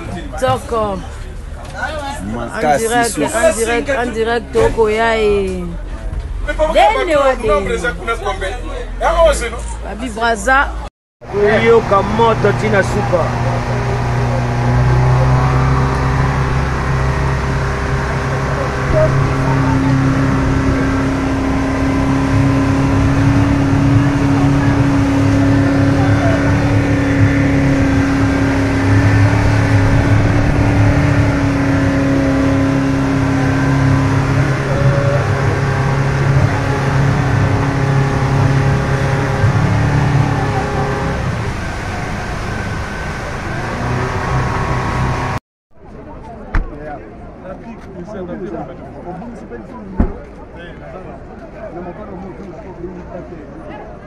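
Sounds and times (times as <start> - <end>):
higher engine hum: 11.2 - 45.4
motorboat engine drone: 11.2 - 45.4
water rushing from wake: 11.4 - 45.4.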